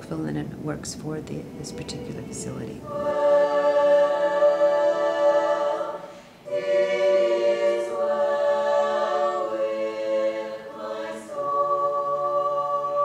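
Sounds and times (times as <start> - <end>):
women's choir singing: 1.4 - 13.0.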